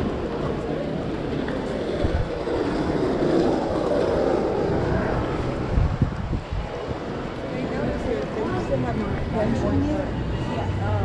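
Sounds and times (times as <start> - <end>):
passing engine drone: 0.0 - 8.1
street noise: 0.0 - 11.0.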